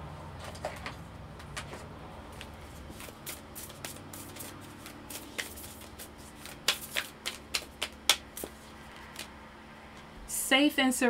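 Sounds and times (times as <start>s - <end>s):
cards being shuffled: 1.6s - 9.4s.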